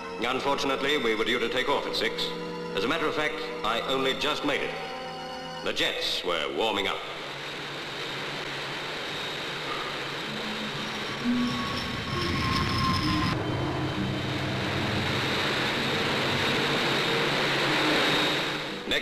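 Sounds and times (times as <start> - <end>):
thin jet whine: 0.0 - 19.0
jet engine roar: 6.8 - 19.0.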